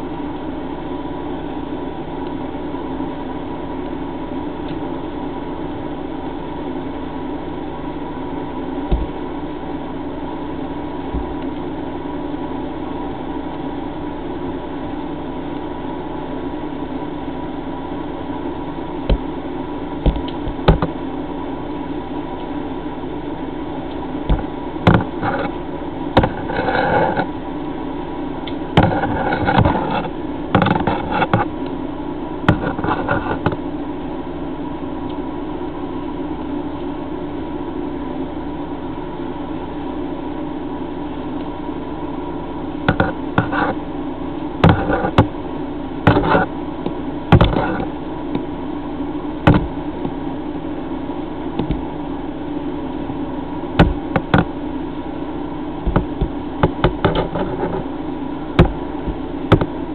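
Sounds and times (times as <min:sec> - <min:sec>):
machine hum: 0:00.0 - 0:59.9
sharp knocks: 0:58.6 - 0:59.7.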